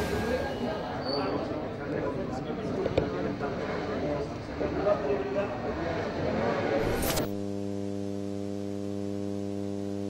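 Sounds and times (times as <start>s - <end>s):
street noise: 0.0s - 7.3s
steady low hum: 6.8s - 10.0s.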